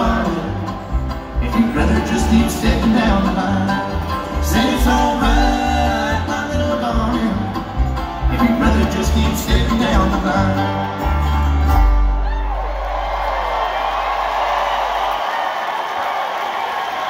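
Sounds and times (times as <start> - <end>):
bluegrass band playing: 0.0 - 14.2
crowd cheering and whistling: 10.8 - 17.0.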